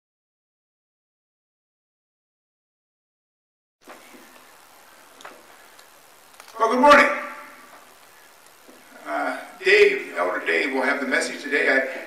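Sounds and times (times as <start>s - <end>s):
man's voice: 6.5s - 7.6s, 9.0s - 12.0s.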